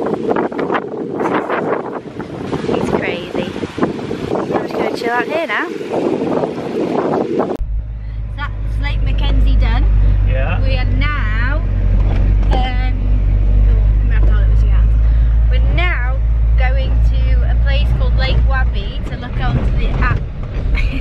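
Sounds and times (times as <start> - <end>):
car engine and road drone: 0.0 - 21.0
wind noise: 0.0 - 21.0.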